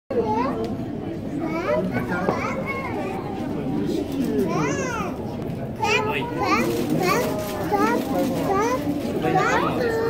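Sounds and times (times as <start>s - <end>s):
children chattering and calling out: 0.1s - 10.0s.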